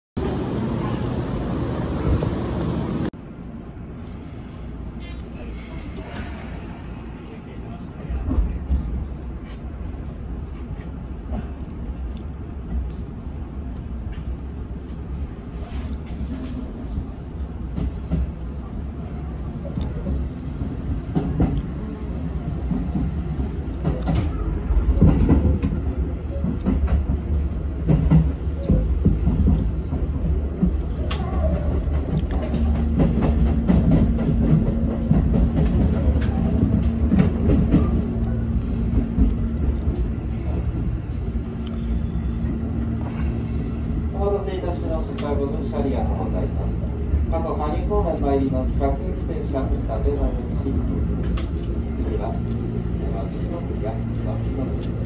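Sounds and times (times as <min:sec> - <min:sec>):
electric train rumbling: 0:00.2 - 0:55.0.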